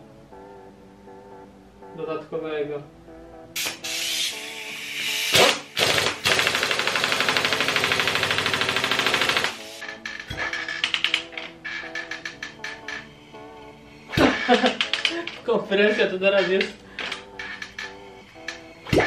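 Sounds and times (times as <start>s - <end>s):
background music: 0.0s - 19.0s
pneumatic impact wrench hammering: 3.6s - 9.9s.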